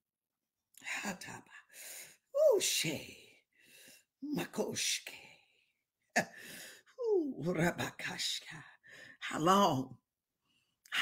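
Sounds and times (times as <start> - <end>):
faint breath: 3.5 - 4.2, 6.3 - 7.0.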